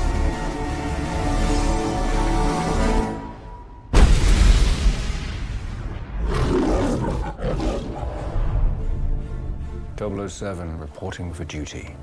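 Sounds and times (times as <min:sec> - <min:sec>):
lion roaring: 0:06.2 - 0:08.5.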